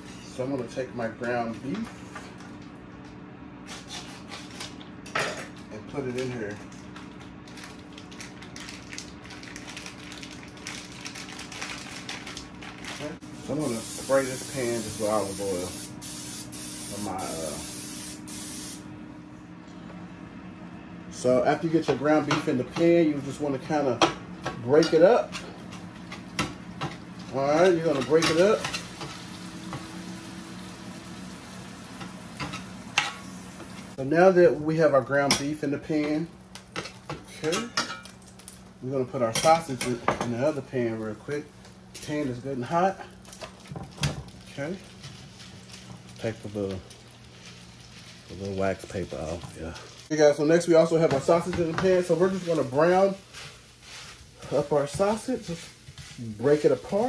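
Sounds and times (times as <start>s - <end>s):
cooking spray hissing: 13.3s - 18.9s, 27.2s - 34.0s, 44.6s - 57.0s.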